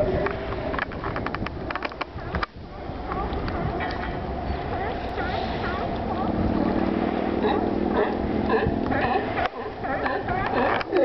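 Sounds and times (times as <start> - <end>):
steady low drone: 2.2 - 11.0
sea lions barking: 2.9 - 11.0.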